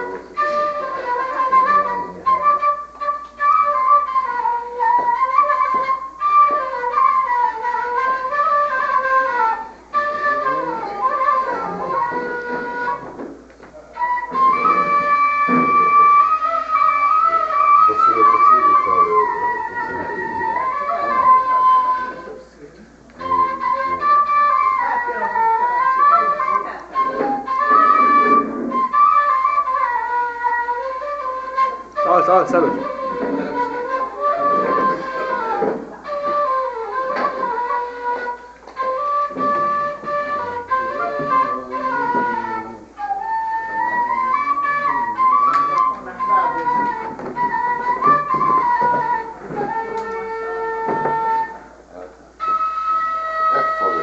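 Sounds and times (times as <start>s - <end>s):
end-blown flute melody: 0.0s - 13.2s, 13.9s - 22.5s, 23.2s - 51.7s, 52.4s - 54.0s.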